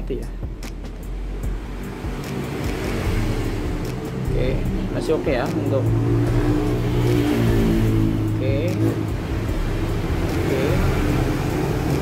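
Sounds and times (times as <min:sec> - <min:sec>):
low engine hum: 0:00.4 - 0:12.0.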